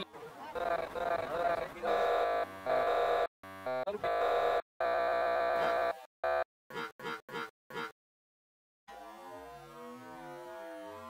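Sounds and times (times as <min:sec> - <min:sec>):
stuttering looped glitch tone: 0:00.6 - 0:07.9.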